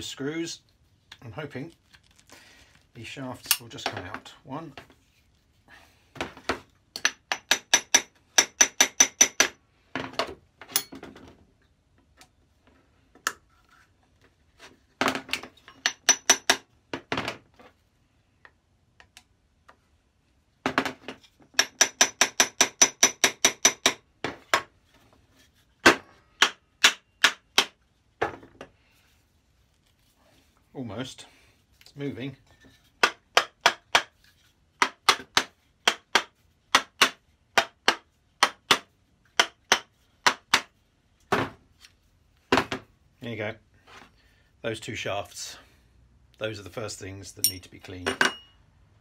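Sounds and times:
small hammer tapping on metal: 7.0 - 9.6, 15.8 - 16.7, 21.5 - 24.0.

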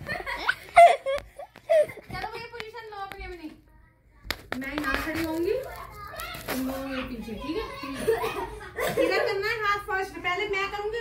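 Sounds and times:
children playing: 0.0 - 11.0.

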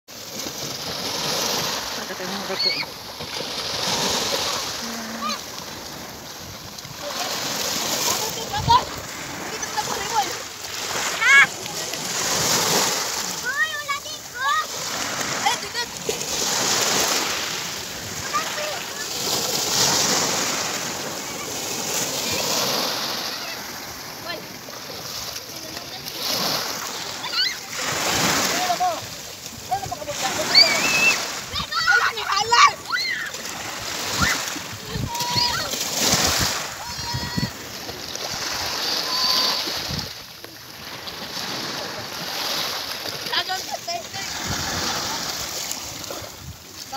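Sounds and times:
splashing in shallow water: 0.1 - 46.9
waves washing up pebble shore: 0.1 - 46.9
children shouting and squealing: 2.3 - 3.0, 3.8 - 5.6, 7.0 - 17.3, 18.0 - 24.4, 26.0 - 29.1, 29.7 - 39.9.

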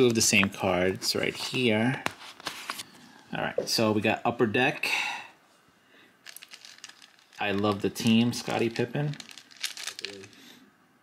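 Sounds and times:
plastic sleeves crinkling: 6.2 - 10.6.

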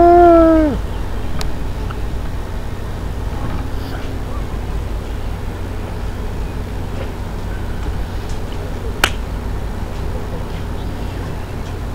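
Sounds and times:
steady low rumble: 0.0 - 11.9.

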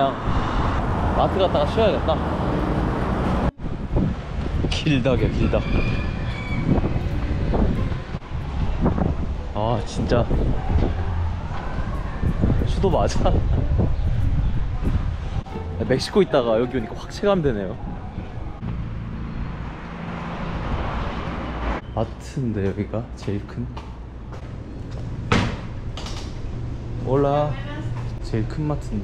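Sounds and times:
vehicle engine hum: 0.0 - 4.7
wind rumbling on microphone: 0.0 - 21.8
road noise: 0.0 - 29.0.

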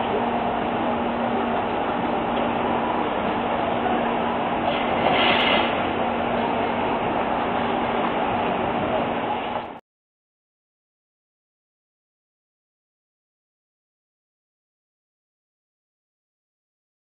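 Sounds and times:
street traffic engine hum: 0.0 - 9.8.

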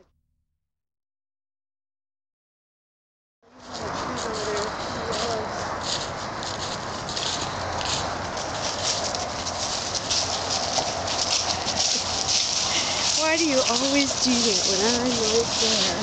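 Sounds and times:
footsteps crunching dry leaves: 3.5 - 16.0.

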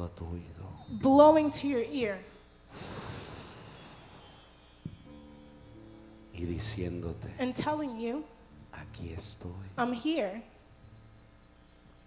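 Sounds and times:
wind chimes ringing: 0.0 - 12.0.

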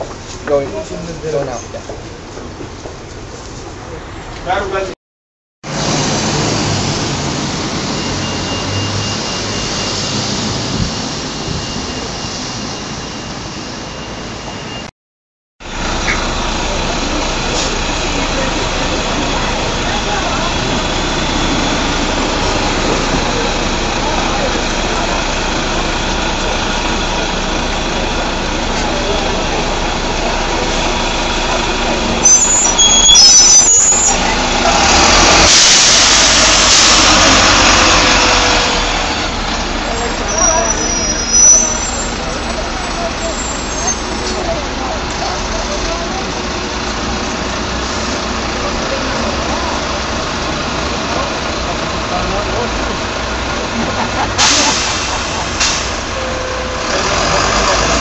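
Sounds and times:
bus diesel engine running: 0.0 - 4.9, 5.6 - 14.9, 15.6 - 58.0
short high squeaks: 32.2 - 34.3, 40.0 - 42.2, 43.2 - 44.4
air brakes hissing: 35.1 - 37.5, 54.4 - 56.8.

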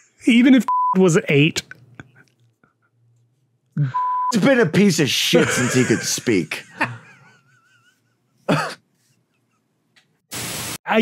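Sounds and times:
man coughing: 5.4 - 7.2, 8.4 - 8.8.

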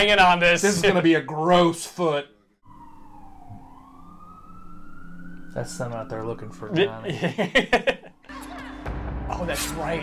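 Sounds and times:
siren wail: 2.6 - 7.1.

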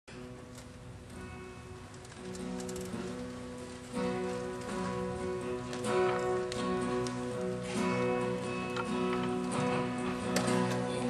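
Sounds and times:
acoustic guitar strumming chords: 2.4 - 11.0.

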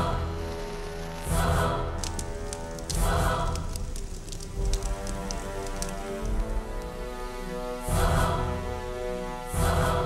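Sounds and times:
fire crackling and popping: 0.0 - 8.5
background music: 0.0 - 10.0.

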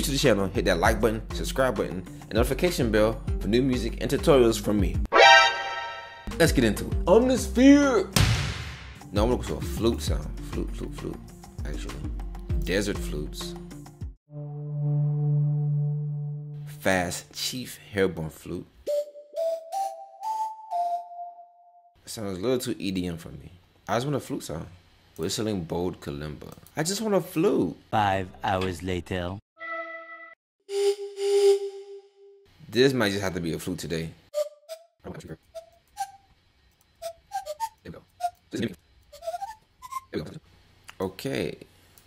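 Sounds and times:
synth flute rising run: 5.1 - 6.3
breathy synth flute notes: 5.2 - 6.3, 18.9 - 21.9.

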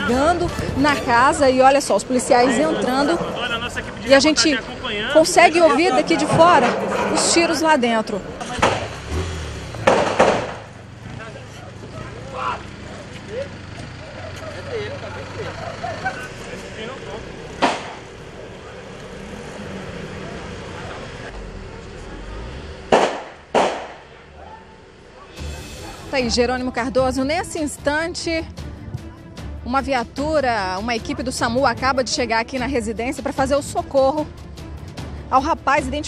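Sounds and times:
gunshot cracks: 22.9 - 24.1.

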